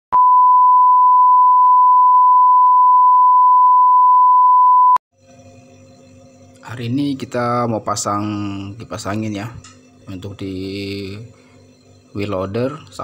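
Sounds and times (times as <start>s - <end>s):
steady high test tone beep: 0.2s - 5.0s.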